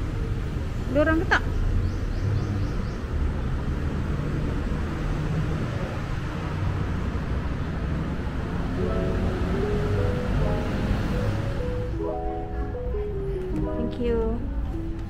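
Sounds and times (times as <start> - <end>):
simple melody of single notes: 8.8 - 15.0.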